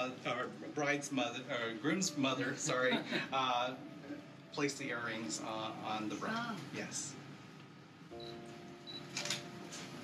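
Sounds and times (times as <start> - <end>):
background music sustained chord: 0.0 - 6.1, 8.1 - 10.0
camera shutter clicking: 9.2 - 9.4.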